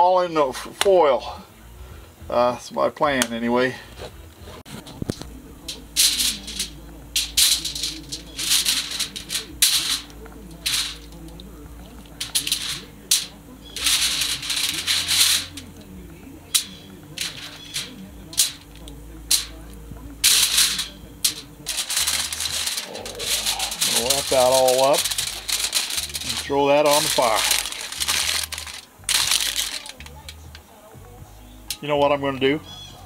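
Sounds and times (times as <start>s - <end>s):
aluminum foil crinkling: 4.7s - 30.6s.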